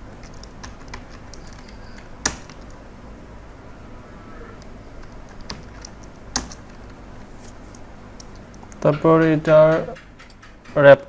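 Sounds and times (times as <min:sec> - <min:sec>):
computer keyboard keys clicking: 0:00.0 - 0:02.8, 0:05.0 - 0:07.0.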